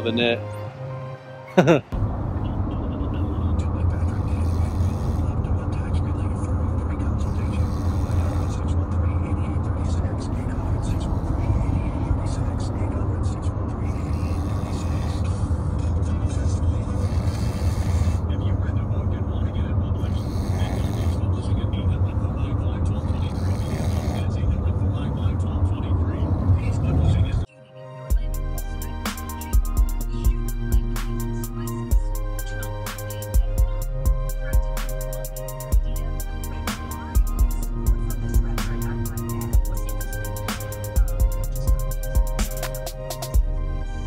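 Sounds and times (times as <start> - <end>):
car cabin road and engine rumble: 2.0 - 4.6, 5.2 - 27.5.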